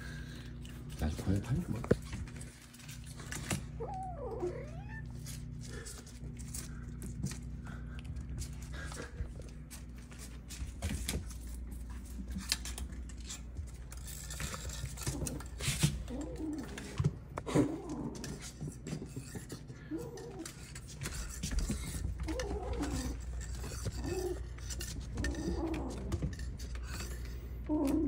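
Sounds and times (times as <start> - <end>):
kittens' claws scratching floor: 0.1 - 28.0
kitten growling: 3.8 - 6.2, 14.6 - 18.5, 19.8 - 20.7, 21.9 - 28.0.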